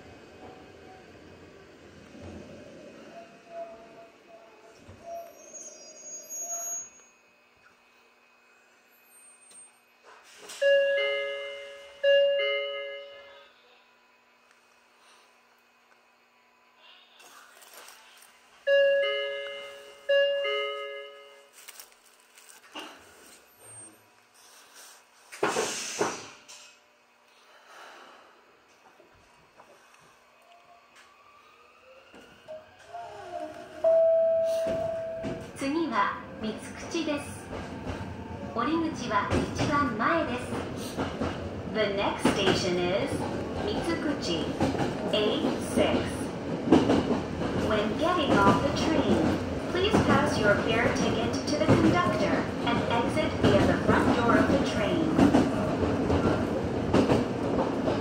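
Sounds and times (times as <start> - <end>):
short burst of hiss: 25.4 - 26.8
train rising whine: 28.2 - 58.0.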